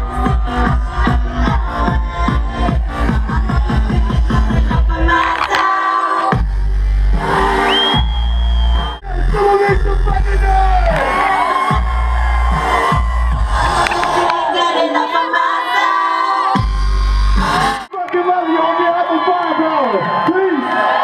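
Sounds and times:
dubstep over sound system: 0.0 - 14.7, 16.5 - 17.9
heavy bass drop: 6.4 - 14.5, 16.6 - 17.9
drum build-up: 7.2 - 14.5.

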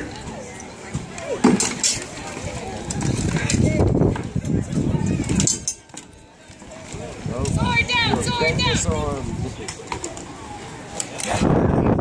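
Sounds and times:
voices of people: 0.0 - 12.0.

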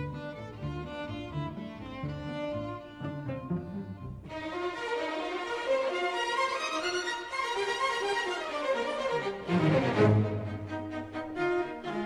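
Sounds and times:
cellos and basses bowing low notes: 0.0 - 7.3
string orchestra playing: 0.0 - 12.0.

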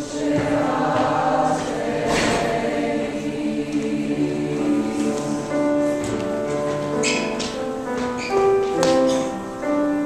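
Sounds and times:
choir singing sustained chords: 0.0 - 6.4.

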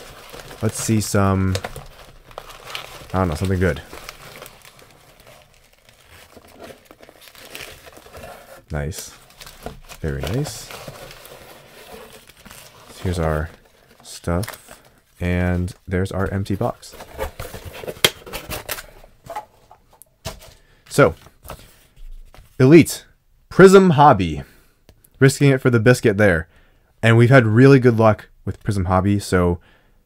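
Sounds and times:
foil wrappers crinkling: 0.0 - 15.0
packing peanuts rustling: 0.0 - 15.5.

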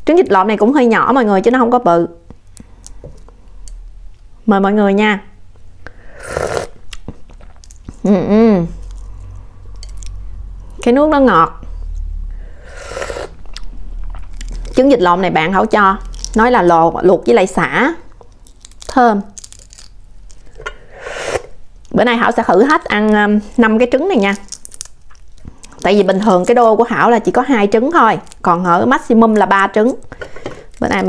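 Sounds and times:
wet slurp: 6.3 - 6.8, 12.7 - 14.3
rustling crackle: 8.7 - 10.2, 12.9 - 16.7, 18.1 - 20.6, 24.1 - 31.0
fingertips peeling eggshell: 15.7 - 16.6, 18.2 - 20.6, 24.1 - 26.6.

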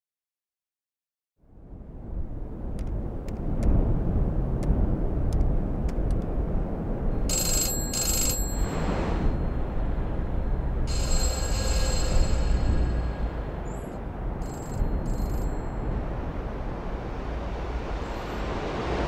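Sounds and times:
low ambient rumble: 1.5 - 7.3, 8.5 - 19.0
telephone ringing: 7.3 - 9.5, 10.9 - 15.9.

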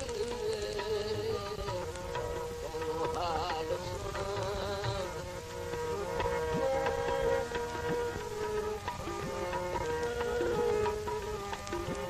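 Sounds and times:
light percussion strokes: 0.0 - 12.0
reedy folk melody over drone: 0.0 - 12.0.

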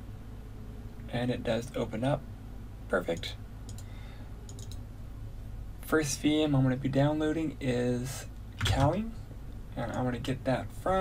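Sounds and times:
low steady hum: 0.0 - 11.0
man speaking: 1.1 - 2.2, 2.9 - 3.4, 5.8 - 9.2, 9.8 - 11.0
computer mouse clicks: 3.2 - 4.8.

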